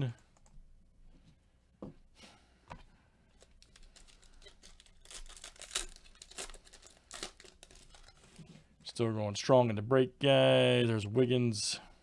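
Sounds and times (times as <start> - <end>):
foil wrapper tearing and crinkling: 3.4 - 8.4.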